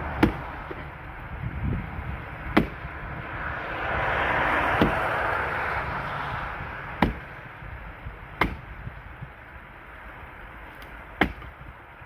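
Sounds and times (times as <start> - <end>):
axe chopping log: 0.0 - 0.9, 2.4 - 2.9, 4.7 - 5.2, 6.9 - 7.4, 8.3 - 8.8, 10.7 - 11.6
broad rushing noise: 0.0 - 12.0.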